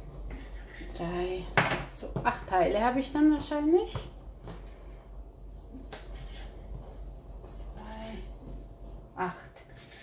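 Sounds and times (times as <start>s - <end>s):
knife cutting through dough: 9.6s - 10.0s.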